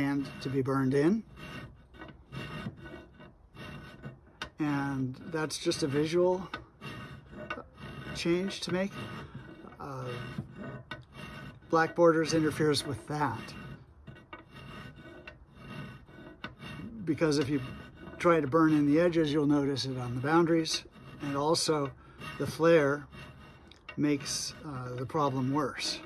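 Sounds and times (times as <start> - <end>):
file rasping on an edge: 0.0 - 26.0.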